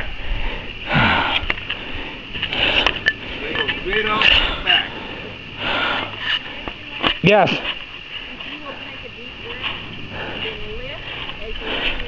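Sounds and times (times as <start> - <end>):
man breathing hard: 0.0 - 3.6, 4.2 - 6.8.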